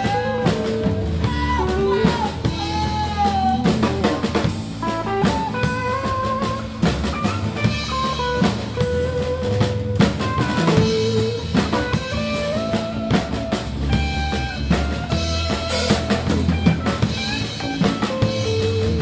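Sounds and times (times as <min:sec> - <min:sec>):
drum kit beating: 0:00.0 - 0:19.0.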